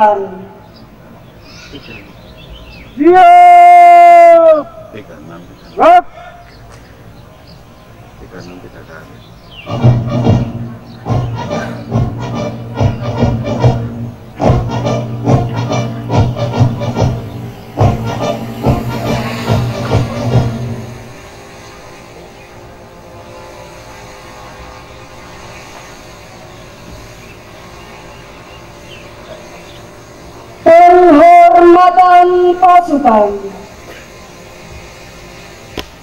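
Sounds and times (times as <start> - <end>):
shouted parade command: 3.0 - 4.7, 5.8 - 6.2, 30.6 - 33.3
ceremonial marching music: 9.4 - 23.1.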